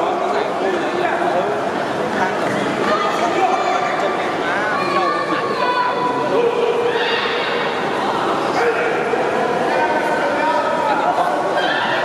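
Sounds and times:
crowd shouting and cheering: 0:02.4 - 0:12.0.

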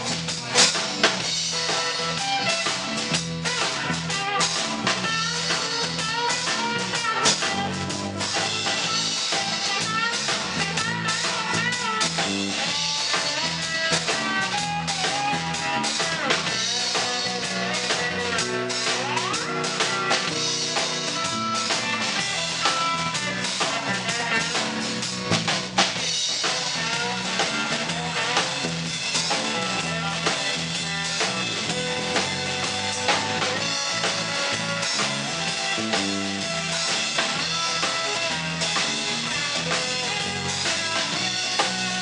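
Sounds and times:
drum kit beat: 0:00.0 - 0:42.0
electric bass line: 0:00.0 - 0:42.0
electric guitar: 0:00.0 - 0:42.0.

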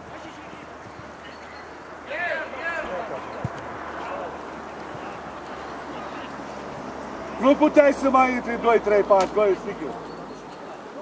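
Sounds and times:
players shouting: 0:02.0 - 0:09.9.

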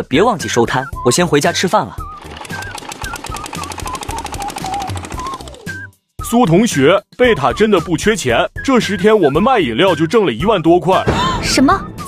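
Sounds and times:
light background music: 0:00.0 - 0:12.0
cartoon scooter engine putter: 0:02.1 - 0:05.9.

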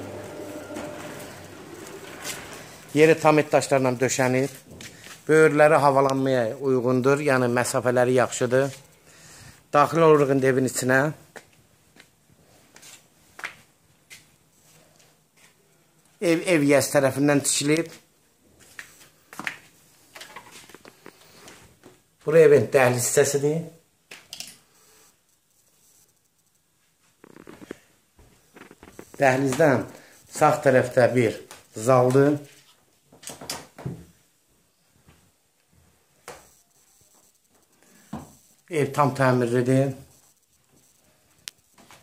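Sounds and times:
footsteps on hard floor: 0:04.5 - 0:05.2, 0:35.8 - 0:38.4
faint ticks: 0:24.8 - 0:26.7, 0:40.1 - 0:41.9.

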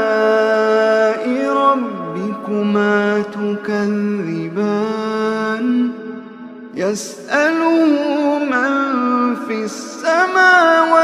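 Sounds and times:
man chanting melodically: 0:00.0 - 0:06.1, 0:06.7 - 0:11.0.

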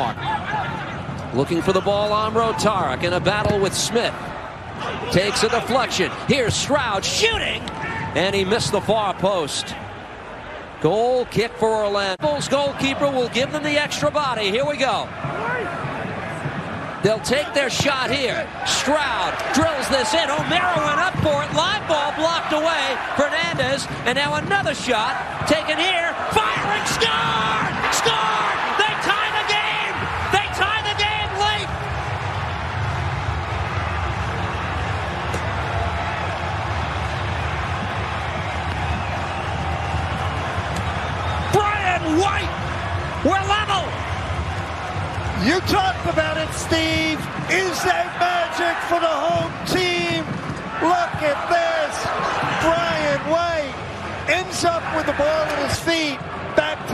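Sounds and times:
stadium background noise: 0:00.0 - 0:56.9
crowd shouting in celebration: 0:12.3 - 0:56.9.

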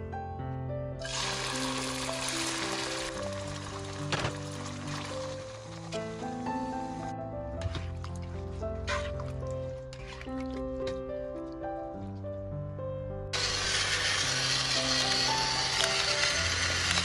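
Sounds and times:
background music: 0:00.0 - 0:17.0
chicken livers sizzling in a pan: 0:01.0 - 0:05.8, 0:13.4 - 0:17.0.

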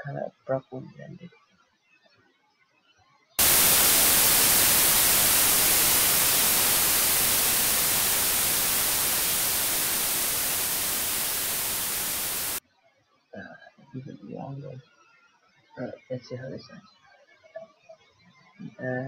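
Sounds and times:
synthesized white noise: 0:03.4 - 0:12.6.

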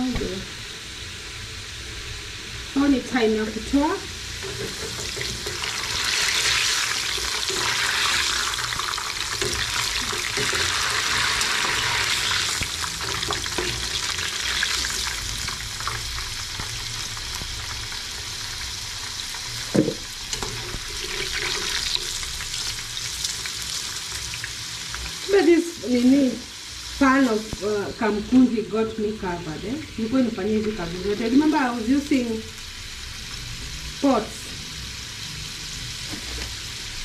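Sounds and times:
chips sizzling in hot oil: 0:00.0 - 0:37.0.

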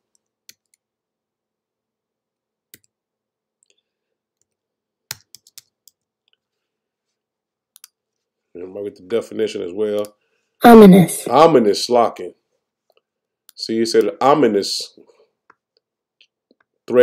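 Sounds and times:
typing on computer keyboard: 0:04.4 - 0:06.1.

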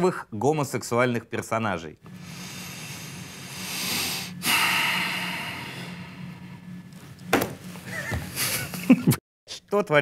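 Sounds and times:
low hum: 0:02.0 - 0:08.9.

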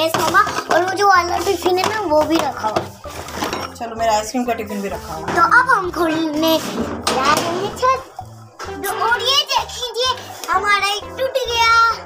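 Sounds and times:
child chattering and calling: 0:08.8 - 0:12.0.

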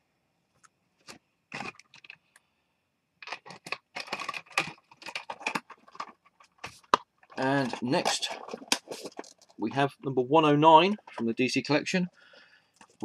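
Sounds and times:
figurine clicking and rattling: 0:03.2 - 0:09.6, 0:10.8 - 0:11.4.

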